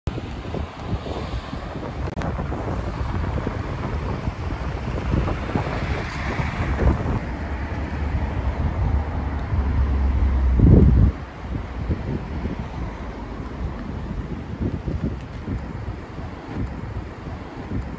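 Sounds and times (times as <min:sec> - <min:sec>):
road traffic passing: 0:00.1 - 0:17.9
wind buffeting microphone: 0:00.1 - 0:17.9.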